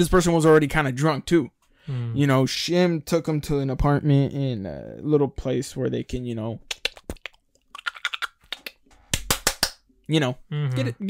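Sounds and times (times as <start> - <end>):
sharp hand slaps: 9.1 - 9.8.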